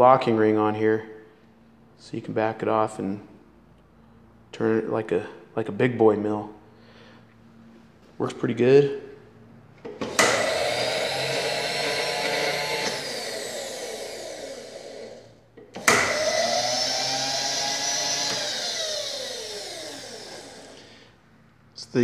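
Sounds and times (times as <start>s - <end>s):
power feed motor whining: 9.9s - 21.1s.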